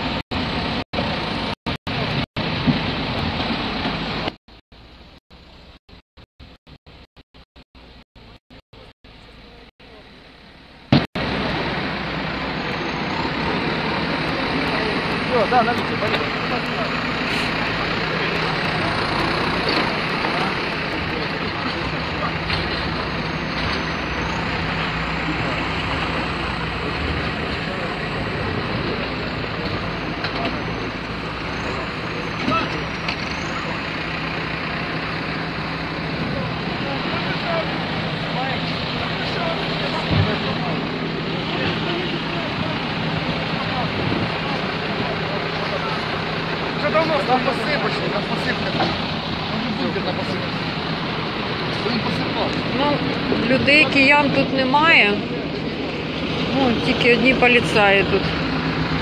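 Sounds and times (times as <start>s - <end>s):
diesel engines humming: 0.0s - 5.8s, 7.8s - 59.0s
people talking: 12.2s - 33.9s, 36.0s - 58.4s.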